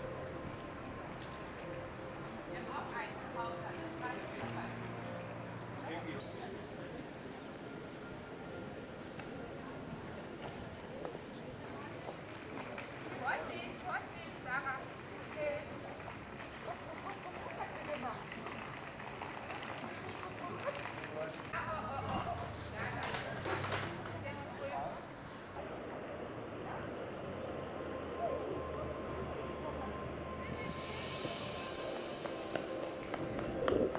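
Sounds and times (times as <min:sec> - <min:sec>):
murmur of distant voices: 0:00.0 - 0:33.9.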